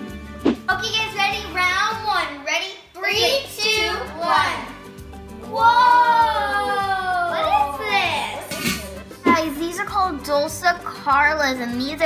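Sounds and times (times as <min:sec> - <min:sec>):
background music with beat: 0:00.0 - 0:02.1, 0:03.2 - 0:12.0
children exclaiming ooh: 0:05.4 - 0:09.0.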